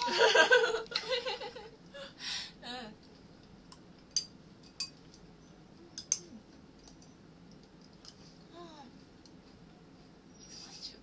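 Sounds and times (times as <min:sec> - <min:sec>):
spoon clicking against tableware: 0:06.0 - 0:06.3.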